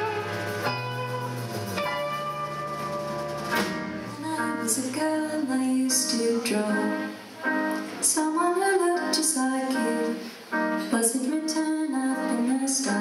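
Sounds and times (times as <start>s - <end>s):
piano and instruments holding chords: 0.0s - 13.0s
woman singing: 4.1s - 7.2s, 8.0s - 13.0s.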